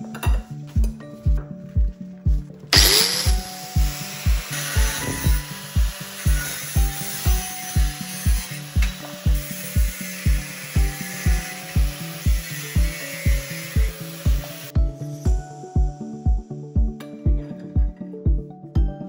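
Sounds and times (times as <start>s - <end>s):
background music with steady beat: 0.0s - 19.0s
angle grinder cutting metal: 2.7s - 14.7s.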